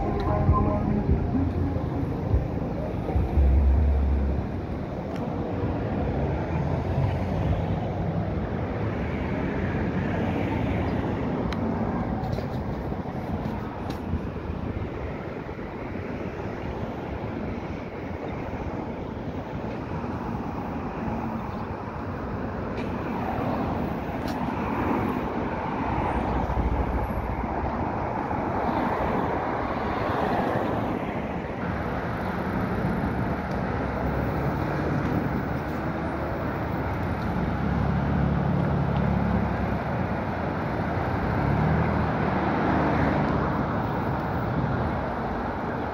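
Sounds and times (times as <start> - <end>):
city street traffic: 0.0 - 45.9.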